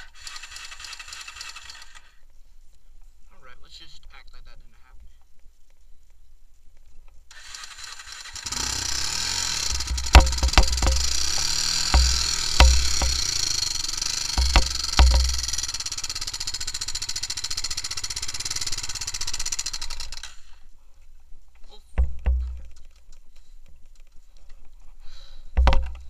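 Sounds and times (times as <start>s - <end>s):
quad engine running: 0.0s - 2.1s, 7.3s - 20.6s
loud thumps and knocks: 9.7s - 13.4s, 14.3s - 15.6s, 22.0s - 22.7s, 25.6s - 26.0s.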